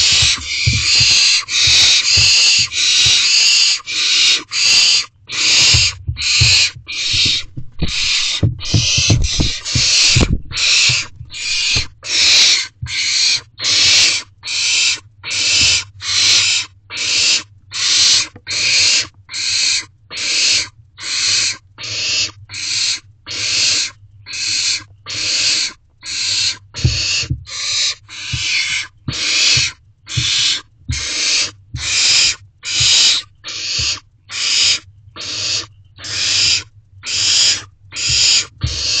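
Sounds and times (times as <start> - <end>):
thumps on nest box floor: 0.0 - 3.7, 5.4 - 13.1, 26.8 - 27.6, 28.3 - 31.1, 31.8 - 32.2, 32.8 - 33.1, 38.0 - 39.0
owlets hissing begging calls: 0.0 - 39.0.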